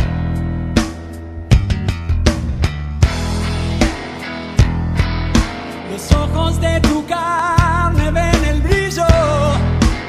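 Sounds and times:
guitar: 0.0 - 10.0
sustained bass notes: 0.0 - 10.0.

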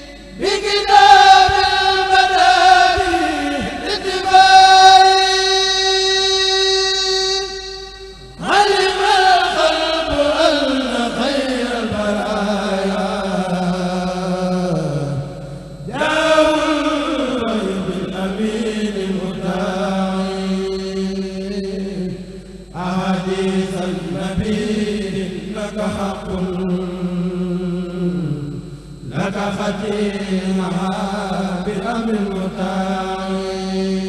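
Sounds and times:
men chanting through microphones: 0.0 - 34.0.

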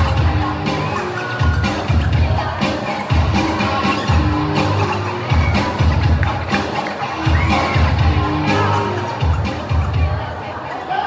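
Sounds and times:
dance music over speakers: 0.0 - 11.0
crowd cheering: 4.7 - 11.0.

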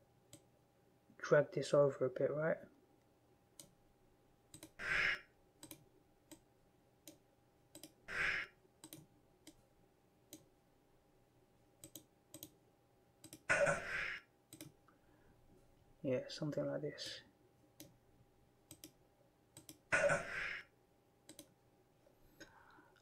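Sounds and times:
computer mouse clicking: 4.5 - 4.8, 5.6 - 6.4, 7.0 - 8.0, 8.8 - 9.6, 10.3 - 10.5, 11.8 - 12.6, 13.2 - 13.5, 14.5 - 14.8, 18.7 - 19.0, 19.6 - 19.9, 21.3 - 21.5.

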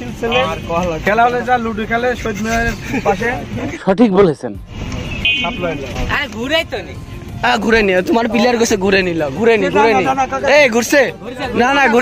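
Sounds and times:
short horn toot: 5.0 - 5.8.

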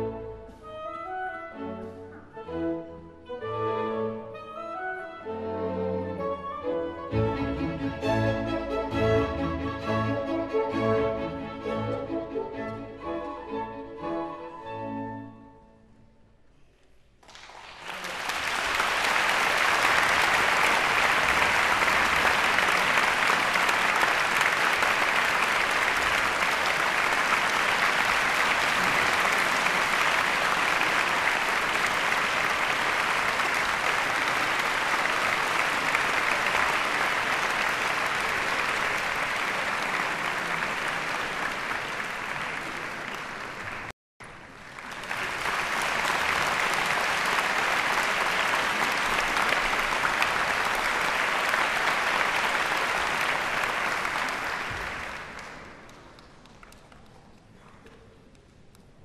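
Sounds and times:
audience applauding: 17.2 - 57.6.

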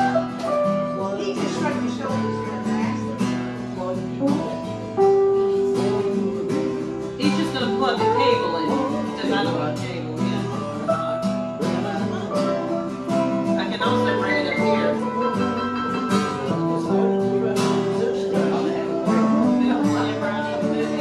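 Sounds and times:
electric keyboard: 0.0 - 21.0
strummed acoustic guitar: 0.0 - 21.0.

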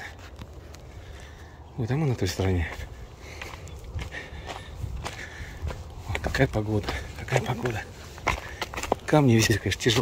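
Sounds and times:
footsteps on grassy stony ground: 0.0 - 10.0.

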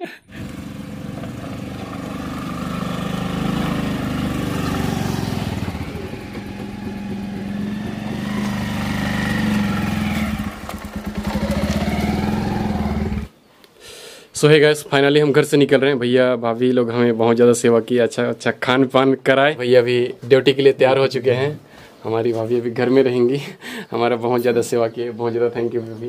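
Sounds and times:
motorcycle engine running: 0.3 - 13.3.

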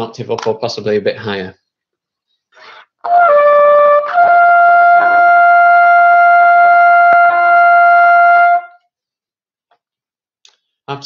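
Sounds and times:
cornet playing a high held note: 3.1 - 8.8.

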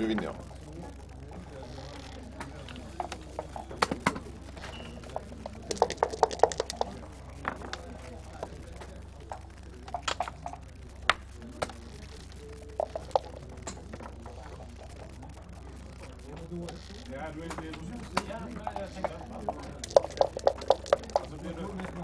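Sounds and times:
checkers clicking on wooden board: 1.8 - 15.2, 17.4 - 22.0
dice shaken in a cup: 4.9 - 8.4, 18.8 - 22.0.

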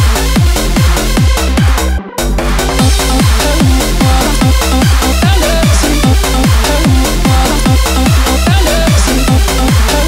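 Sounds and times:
fast dance beat: 0.0 - 10.0
held synth chords: 0.0 - 10.0
deep falling bass note: 2.2 - 9.4.

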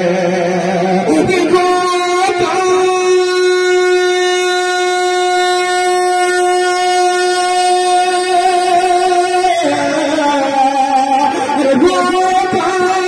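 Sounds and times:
man singing a long note: 0.0 - 13.0.

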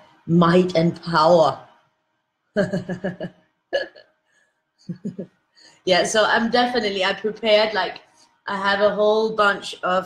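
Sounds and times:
woman laughing: 2.6 - 4.0, 4.9 - 5.2.

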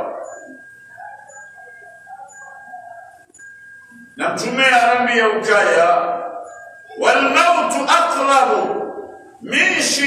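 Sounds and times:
faint wavering sound: 0.0 - 4.3
thin steady high whine: 0.0 - 10.0.

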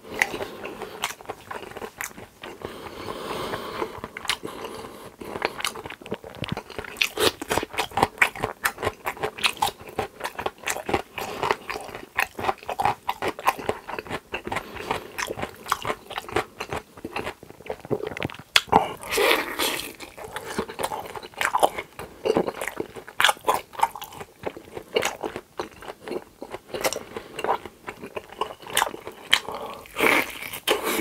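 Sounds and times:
chewing food: 0.0 - 31.0.

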